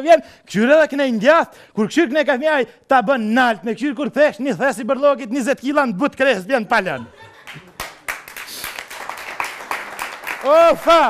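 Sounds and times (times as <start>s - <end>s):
audience clapping: 7.4s - 11.0s.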